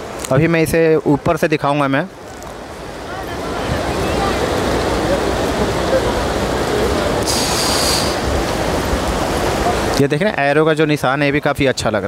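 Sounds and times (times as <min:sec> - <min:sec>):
river water rushing: 0:00.0 - 0:11.4.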